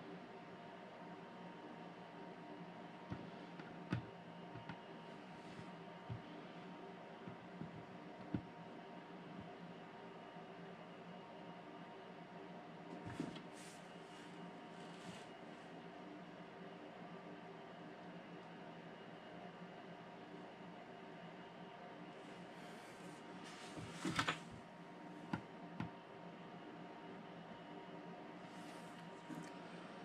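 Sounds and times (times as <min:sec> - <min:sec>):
faint hum: 0:00.0 - 0:30.0.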